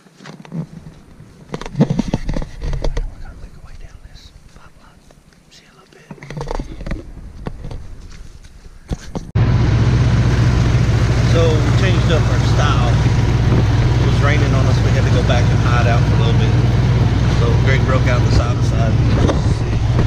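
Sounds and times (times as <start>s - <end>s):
man talking: 2.9s - 4.9s, 11.2s - 13.2s, 14.0s - 16.7s, 17.3s - 20.0s
utility vehicle engine running: 8.9s - 20.0s.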